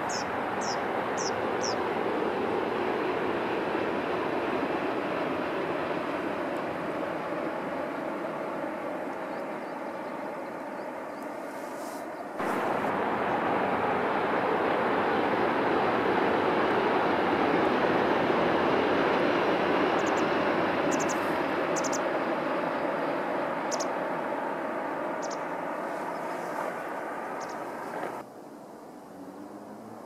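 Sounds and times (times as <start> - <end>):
distant train rushing past: 0.0 - 28.2.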